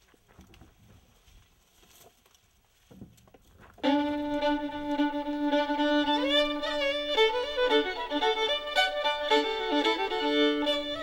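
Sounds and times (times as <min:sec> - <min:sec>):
faint rustles and clicks: 0:00.0 - 0:05.5
background music: 0:03.8 - 0:11.0
violin long held note: 0:03.8 - 0:11.0.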